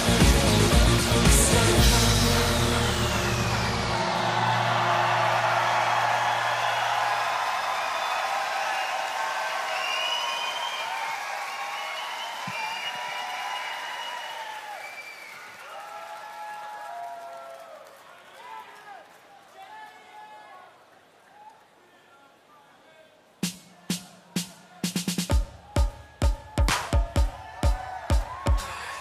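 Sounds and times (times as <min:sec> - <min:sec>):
pop song held note: 0:00.0 - 0:07.0
audience applauding: 0:00.0 - 0:20.1
whoops and cheers: 0:03.0 - 0:19.0, 0:26.4 - 0:29.0.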